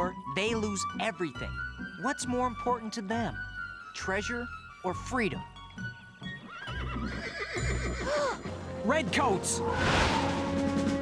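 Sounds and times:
background music: 0:00.0 - 0:11.0
horse whinnying: 0:06.3 - 0:08.6.

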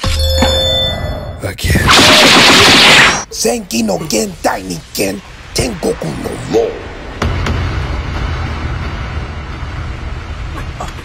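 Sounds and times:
steady low rumbling: 0:03.8 - 0:11.0.

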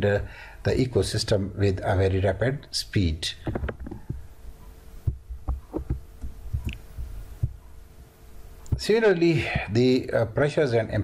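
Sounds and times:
faint electrical hum: 0:00.0 - 0:11.0
computer keys thudding: 0:03.4 - 0:04.2, 0:05.1 - 0:07.6.

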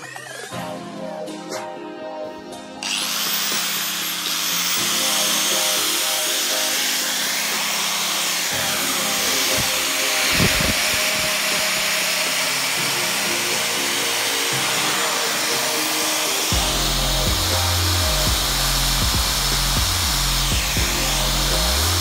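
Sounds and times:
background music with held notes: 0:00.0 - 0:22.0
angle grinder sanding wood: 0:02.8 - 0:22.0
bass line: 0:16.5 - 0:22.0.

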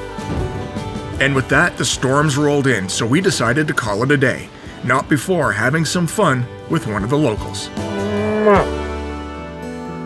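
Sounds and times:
background music with sustained chords: 0:00.0 - 0:10.0
cow mooing: 0:07.8 - 0:09.0.

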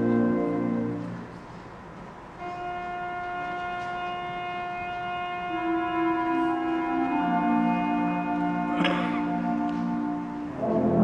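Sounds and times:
concert band sustained chord: 0:02.4 - 0:11.0.

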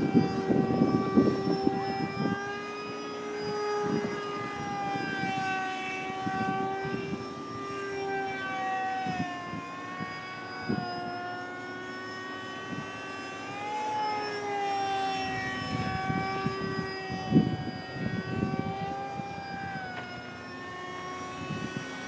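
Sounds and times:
wind buffeting microphone: 0:00.0 - 0:11.3, 0:15.2 - 0:22.0
model airplane motor whine: 0:00.0 - 0:22.0.

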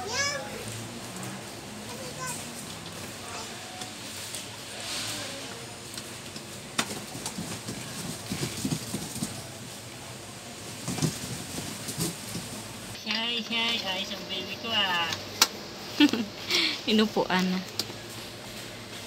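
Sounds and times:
chair parts clicking and rattling: 0:05.9 - 0:09.5.

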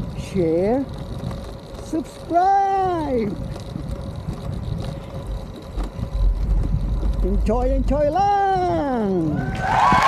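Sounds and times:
tyre rumble: 0:00.0 - 0:10.0
wind buffeting microphone: 0:00.0 - 0:10.0.

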